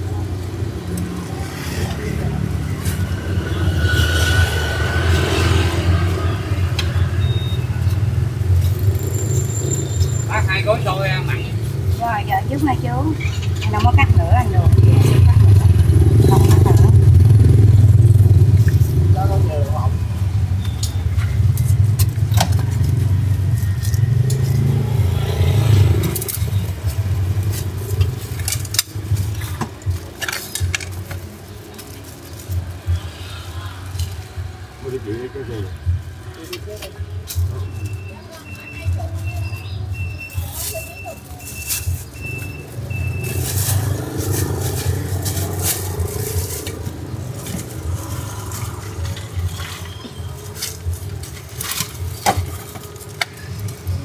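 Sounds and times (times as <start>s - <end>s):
motorbike engines rumbling: 0.0s - 54.0s
short evenly spaced beeps: 7.2s - 7.7s.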